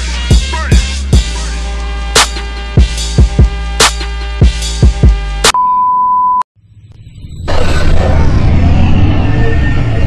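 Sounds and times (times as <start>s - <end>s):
hip hop beat: 0.0s - 5.6s
high electronic beep: 5.6s - 7.5s
low rumble: 6.6s - 10.0s.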